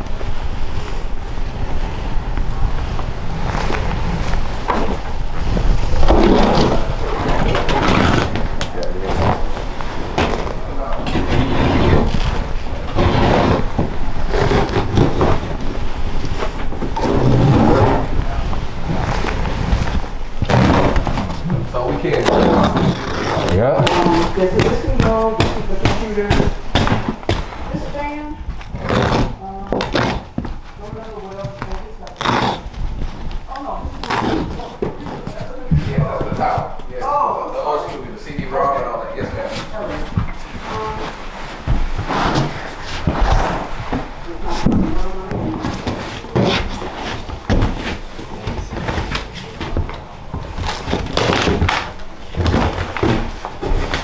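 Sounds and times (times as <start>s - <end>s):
rustling and scraping of clutter: 0.0s - 54.0s.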